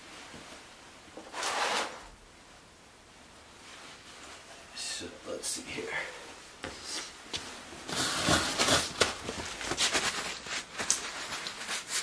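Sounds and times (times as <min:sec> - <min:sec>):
footsteps: 0:06.6 - 0:11.4.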